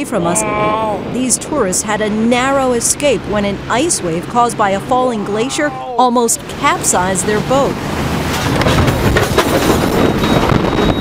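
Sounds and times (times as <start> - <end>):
loud rumbling rushing noise: 0.0 - 5.5, 6.4 - 11.0.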